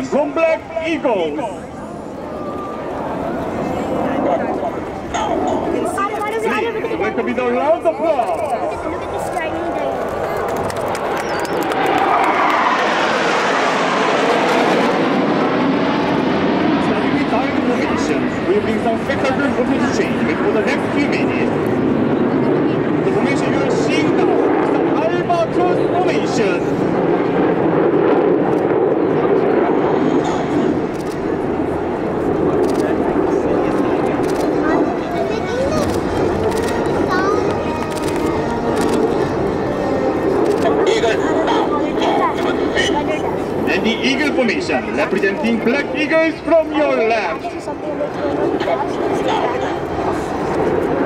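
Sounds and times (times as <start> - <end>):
jet roar: 0.0 - 51.0
spectators chattering: 0.0 - 51.0.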